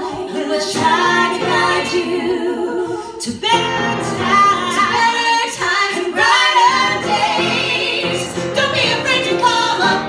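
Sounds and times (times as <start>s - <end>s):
women singing in harmony: 0.0s - 10.0s
upright piano accompaniment: 0.1s - 2.4s, 3.4s - 10.0s.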